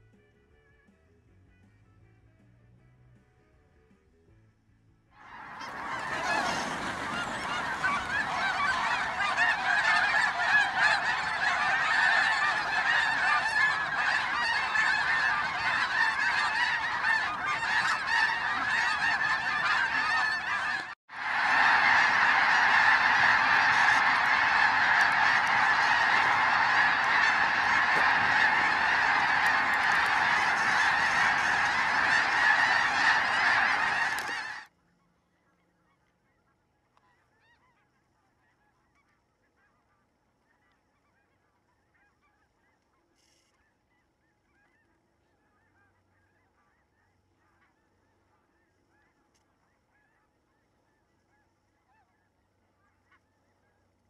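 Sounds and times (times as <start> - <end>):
flock of geese honking: 5.3 - 34.7, 35.7 - 43.7, 44.3 - 53.3.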